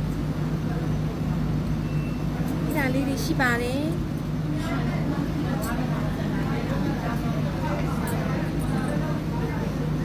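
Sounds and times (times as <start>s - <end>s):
steady low hum: 0.0s - 10.0s
woman speaking: 2.7s - 4.0s.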